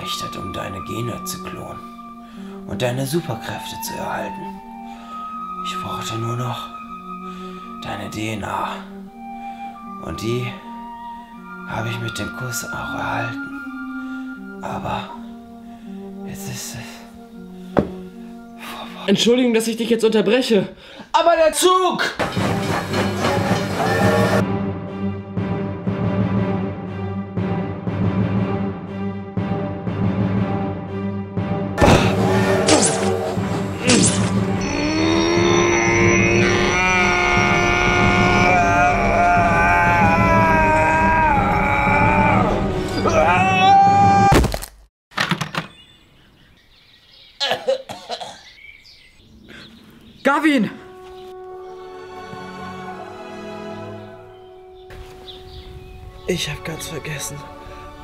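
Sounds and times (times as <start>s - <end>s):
background music: 0.0s - 44.3s, 50.2s - 58.0s
short knocks: 17.8s - 18.1s
train running on rails: 22.2s - 24.4s
body crashing to the ground: 31.8s - 34.5s, 44.3s - 44.9s
person yelling: 34.6s - 44.4s
faint bird chirps: 48.2s - 50.4s.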